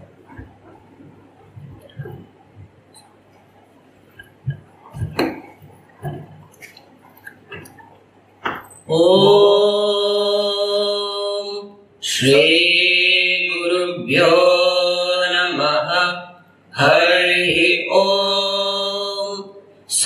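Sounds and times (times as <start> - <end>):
man chanting: 8.9 - 20.0.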